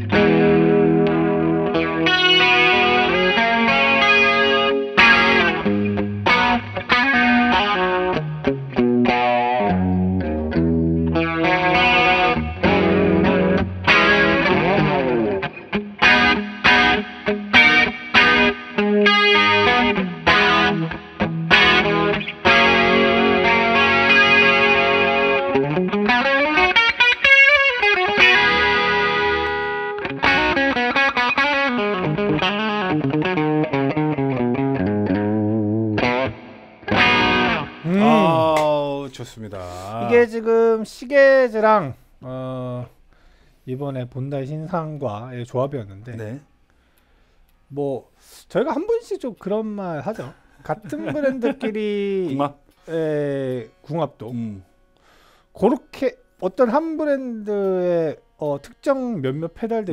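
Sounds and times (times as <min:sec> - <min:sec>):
electric guitar chords and leads: 0:00.0 - 0:38.9.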